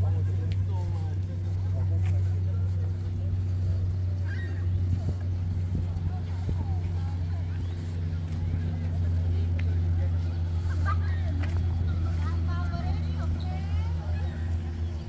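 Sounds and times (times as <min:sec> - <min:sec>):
low mechanical hum: 0:00.0 - 0:15.0
passers-by talking: 0:00.0 - 0:15.0.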